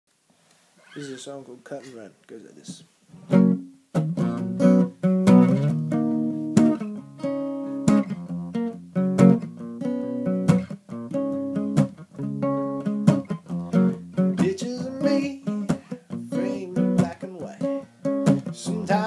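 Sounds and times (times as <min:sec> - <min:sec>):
acoustic guitar strumming chords: 0:03.2 - 0:19.0.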